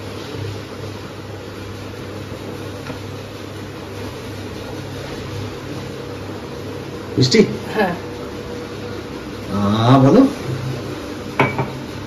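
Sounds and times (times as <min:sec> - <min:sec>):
glass clinking on hard surface: 0:11.4 - 0:11.8.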